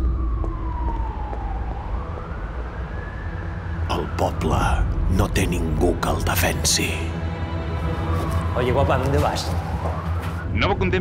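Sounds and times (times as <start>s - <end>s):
siren wail: 0.0s - 5.7s, 6.8s - 10.6s.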